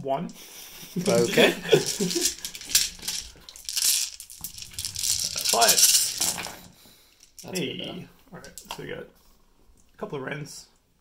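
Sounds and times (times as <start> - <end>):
plastic dice clattering: 1.0 - 6.6.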